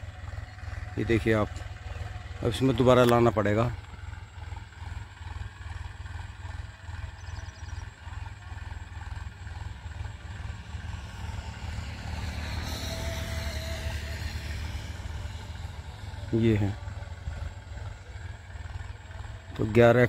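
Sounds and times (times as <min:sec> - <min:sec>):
distant tractor engine throbbing: 0:00.0 - 0:20.0.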